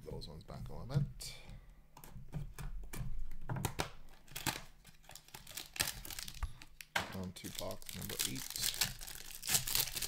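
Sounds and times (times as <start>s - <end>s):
plastic wrapper crinkling: 4.1s - 10.0s.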